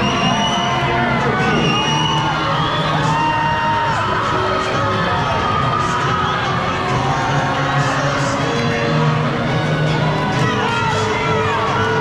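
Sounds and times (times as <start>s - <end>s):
crowd cheering and yelling: 0.0s - 12.0s.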